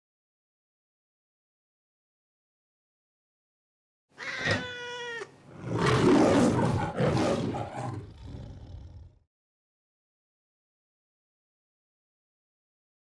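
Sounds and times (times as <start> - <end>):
cat meowing and yowling: 4.2 - 5.4.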